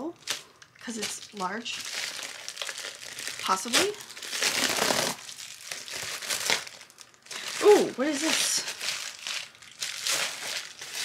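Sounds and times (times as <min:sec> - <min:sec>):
package wrapping crinkling: 0:00.2 - 0:11.0.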